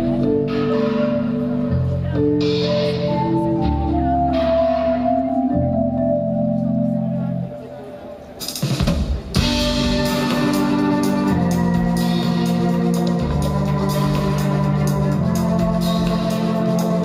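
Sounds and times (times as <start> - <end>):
steady beat with hi-hat: 8.4 - 17.0.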